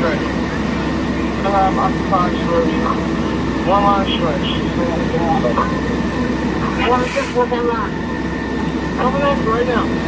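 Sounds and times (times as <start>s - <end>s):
fire engine droning: 0.0s - 10.0s.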